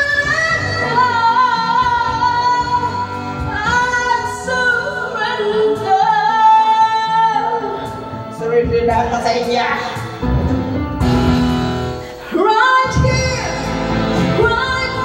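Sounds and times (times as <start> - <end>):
woman singing into microphone: 0.0 - 10.0, 12.2 - 15.0
backing track: 0.0 - 15.0.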